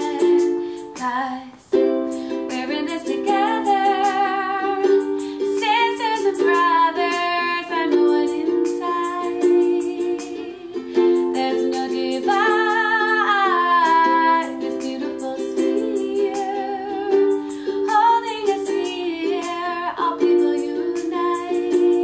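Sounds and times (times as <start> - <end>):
ukulele strumming chords: 0.0 - 22.0
woman singing: 0.0 - 22.0.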